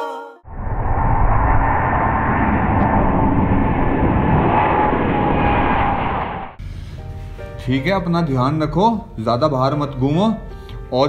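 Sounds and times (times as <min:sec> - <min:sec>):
jet engines at takeoff: 0:00.5 - 0:07.0.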